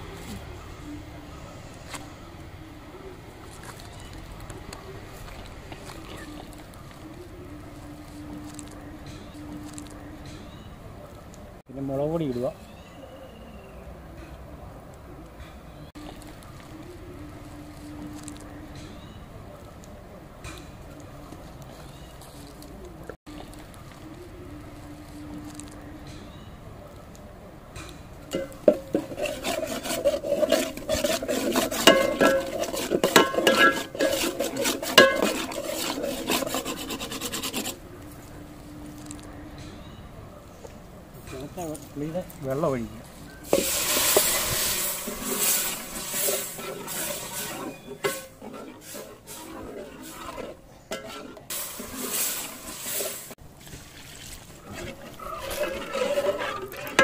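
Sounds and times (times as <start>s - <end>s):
ladle clinking against pot: 28.3s - 37.0s, 43.4s - 53.2s
metal ladle scraping a pot: 28.3s - 37.8s, 43.0s - 53.4s, 54.6s - 57.0s.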